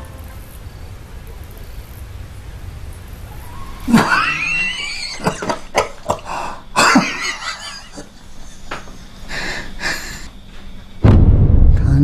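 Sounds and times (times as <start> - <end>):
man coughing: 6.1 - 7.3
wheezing: 6.2 - 6.8, 9.2 - 10.4.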